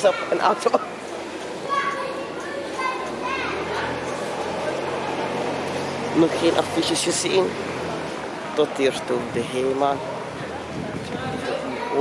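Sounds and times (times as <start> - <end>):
street background noise: 0.0 - 12.0
children calling out: 1.5 - 5.2.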